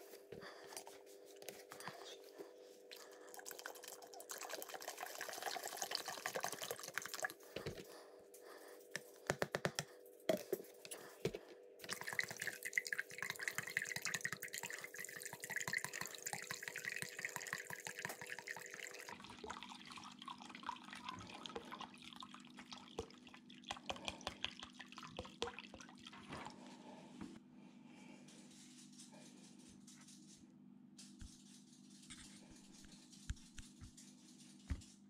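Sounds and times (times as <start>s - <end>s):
liquid pouring into plastic jug: 2.9s - 7.8s, 11.8s - 26.6s.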